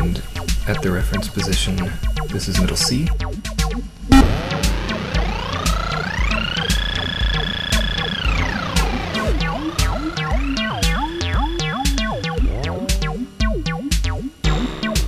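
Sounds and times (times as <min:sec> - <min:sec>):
hi-hat ticks: 0:00.0 - 0:03.9, 0:04.5 - 0:15.0
acid bass synth line: 0:00.0 - 0:15.0
kick drum beat: 0:00.5 - 0:15.0.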